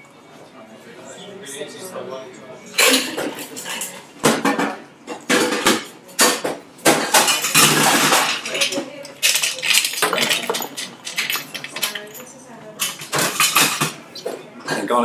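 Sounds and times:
ice clinking into glass: 7.2s - 12.2s
ice cubes rattling in metal scoop: 7.4s - 12.2s.

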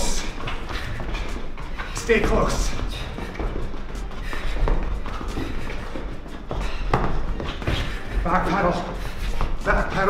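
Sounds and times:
footsteps on rubber gym floor: 0.0s - 10.0s.

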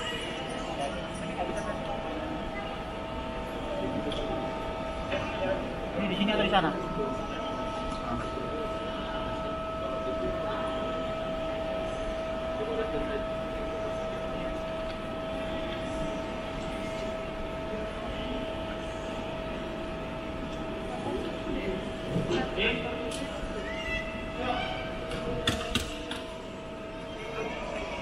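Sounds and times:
constant mechanical drone: 0.0s - 28.0s
faint voices: 0.0s - 28.0s.

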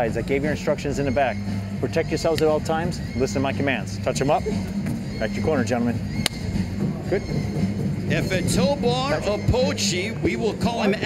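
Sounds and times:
steady low hum: 0.0s - 11.0s
sharp snap: 2.3s - 2.5s, 6.1s - 6.5s.

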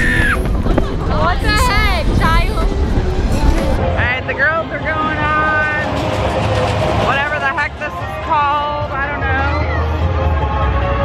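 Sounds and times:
riders shrieking and whooping: 0.0s - 0.8s
wind rumbling on microphone: 0.0s - 8.2s
music with held sung voice: 8.0s - 11.0s.

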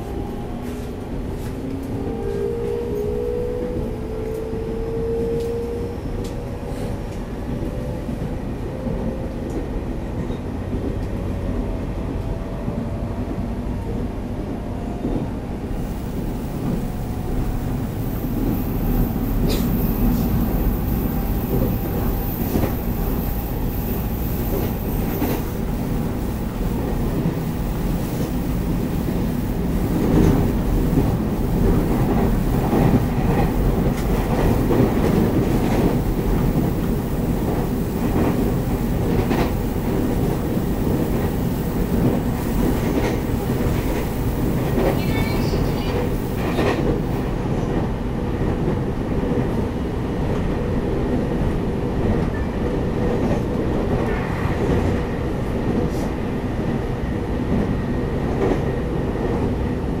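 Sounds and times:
train wheels rumbling on rail: 0.0s - 60.0s.

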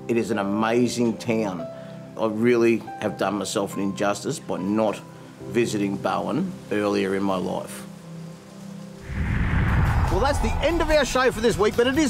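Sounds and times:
soft background music: 0.0s - 12.0s
rising whoosh effect: 9.0s - 11.5s.

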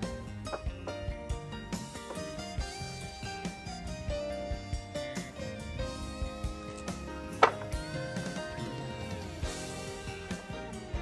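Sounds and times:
guitar background music: 0.0s - 11.0s
wood block knocking on wood: 7.4s - 7.8s.

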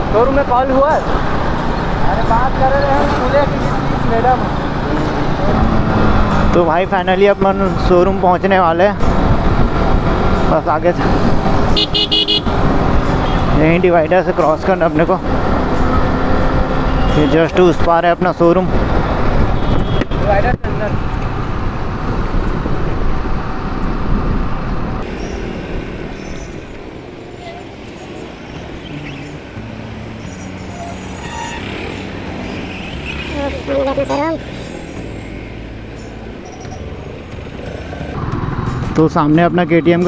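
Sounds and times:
motorcycle engine: 0.0s - 17.5s, 24.5s - 39.0s
surrounding traffic: 0.0s - 40.0s
wind noise: 4.6s - 13.6s, 15.2s - 31.6s
person speaking: 33.3s - 34.5s.

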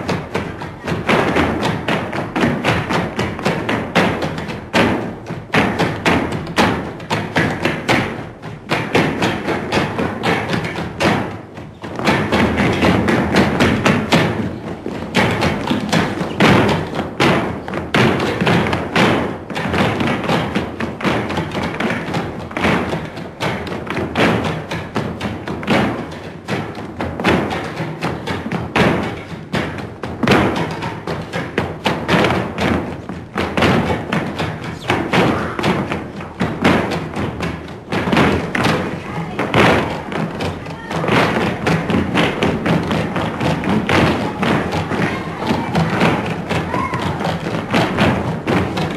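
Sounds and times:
flamenco music: 0.0s - 48.9s
voices: 34.6s - 35.9s, 38.8s - 41.2s, 43.8s - 47.2s.

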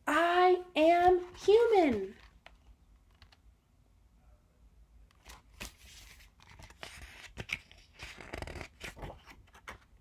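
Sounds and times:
hands handling a book: 5.1s - 10.0s.

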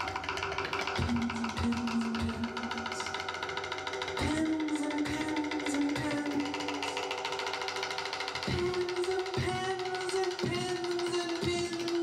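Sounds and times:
fast drum rolls on toms: 0.0s - 12.0s.

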